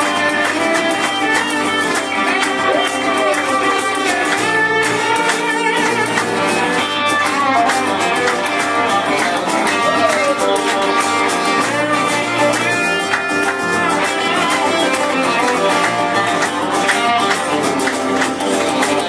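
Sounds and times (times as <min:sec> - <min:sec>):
acoustic guitar rhythm: 0:00.0 - 0:19.0
electric guitar lead: 0:00.0 - 0:19.0.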